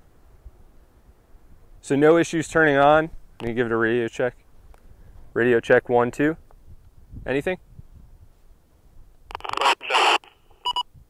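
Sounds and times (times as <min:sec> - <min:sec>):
rough radio speaker audio: 0:09.3 - 0:10.9.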